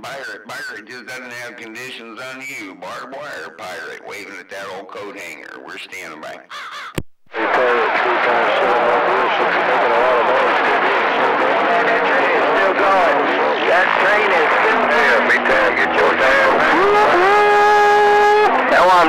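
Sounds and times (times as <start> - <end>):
radio static noise: 0.0 - 6.5, 7.3 - 17.6
garbled radio voices: 0.0 - 6.7, 7.3 - 19.0.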